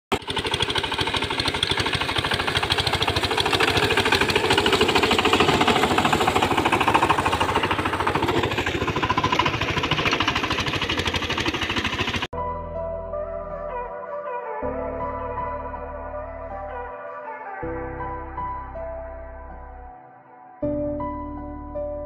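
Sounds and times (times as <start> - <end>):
diesel engine knocking: 0.1 - 12.3
tiller churning water: 0.1 - 12.3.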